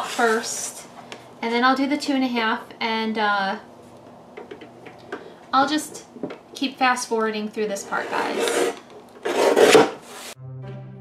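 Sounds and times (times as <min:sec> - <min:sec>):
paper trimmer blade slicing paper: 0:08.2 - 0:10.4
background music: 0:10.4 - 0:11.0.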